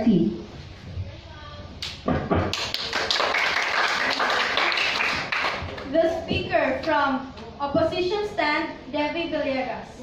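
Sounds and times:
audience applauding: 0:02.5 - 0:05.9.

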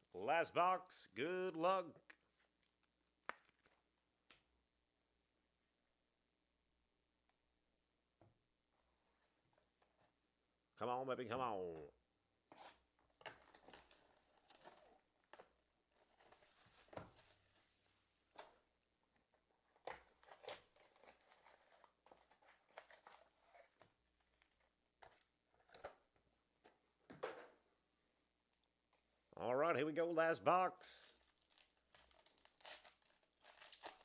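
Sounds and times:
foil packs crinkling and tearing: 0:31.0 - 0:34.0.

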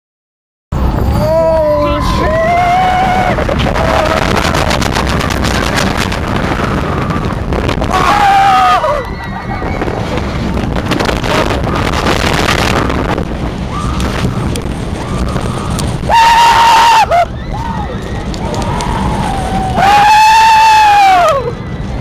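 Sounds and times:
roller coaster on steel track: 0:00.8 - 0:22.0
wind buffeting microphone: 0:00.8 - 0:22.0
rider screaming: 0:01.1 - 0:05.6, 0:06.4 - 0:10.3, 0:13.6 - 0:22.0.

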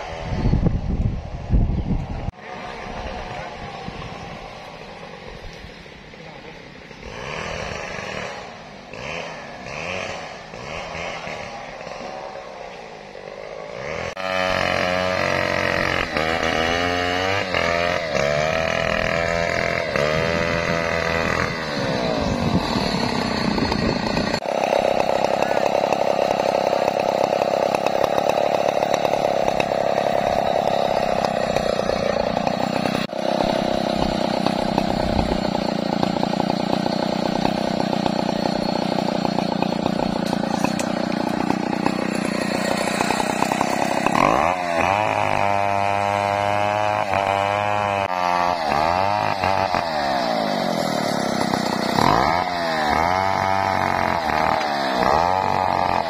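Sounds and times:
chainsaw cutting log: 0:07.0 - 0:56.0.

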